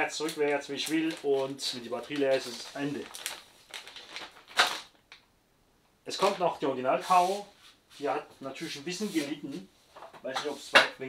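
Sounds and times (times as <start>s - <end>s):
plastic bag crinkling: 0.1s - 5.3s.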